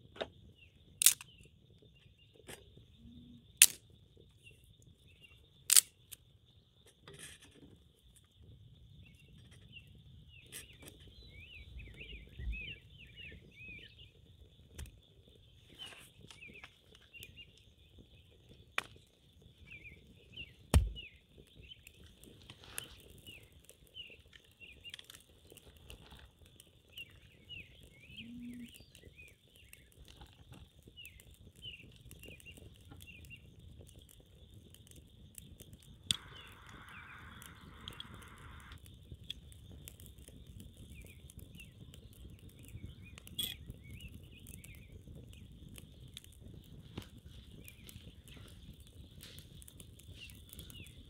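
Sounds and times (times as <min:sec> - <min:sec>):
stick fire crackling: 0:00.0 - 0:51.0
bird chirps: 0:09.0 - 0:25.1, 0:25.8 - 0:51.0
hiss: 0:36.2 - 0:38.8.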